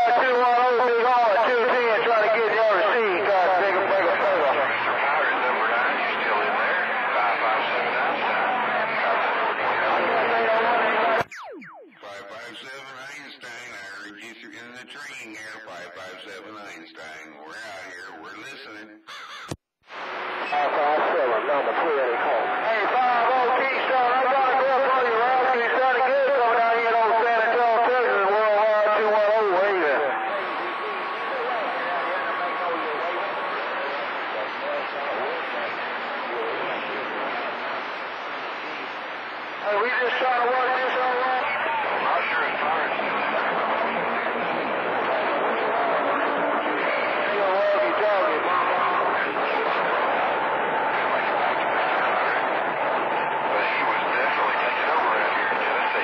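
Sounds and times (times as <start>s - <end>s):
faint garbled radio voices: 0.0s - 56.0s
radio static hiss: 10.9s - 19.0s, 19.9s - 56.0s
garbled voices over radio: 11.9s - 19.6s.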